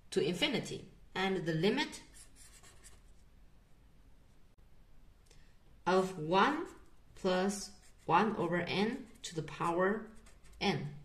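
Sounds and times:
marker pen writing on paper: 0:02.0 - 0:03.2, 0:06.4 - 0:10.9.

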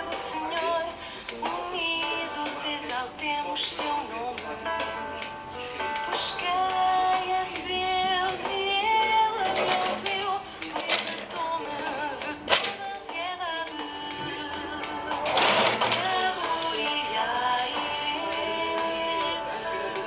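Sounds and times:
woman singing a song: 0:00.0 - 0:20.0.

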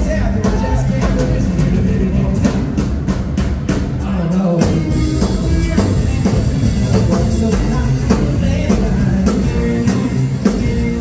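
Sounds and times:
drum kit: 0:00.0 - 0:11.0
electric guitar: 0:00.0 - 0:11.0
upright double bass: 0:00.0 - 0:11.0.

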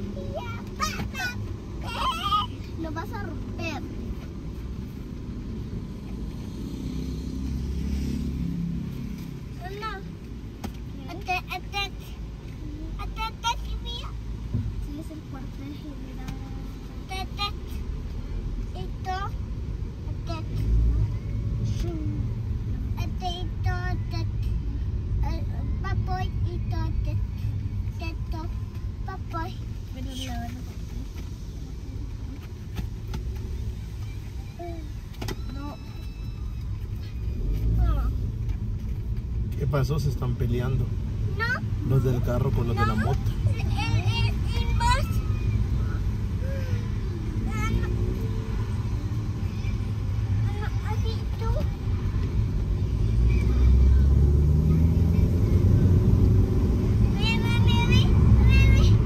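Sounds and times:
car engine and road rumble: 0:00.0 - 0:59.0
quiet voices talking: 0:09.5 - 0:59.0.

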